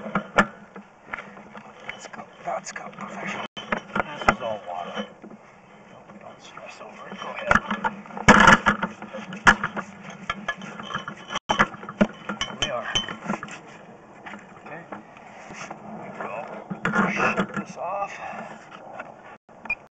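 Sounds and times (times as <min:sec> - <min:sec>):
cable knocking and scraping in pipe: 0:00.0 - 0:19.2
indistinct voices: 0:01.6 - 0:08.0.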